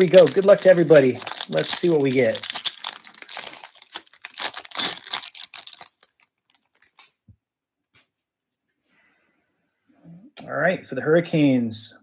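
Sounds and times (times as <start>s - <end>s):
foil wrapper tearing and crinkling: 0.0s - 7.2s.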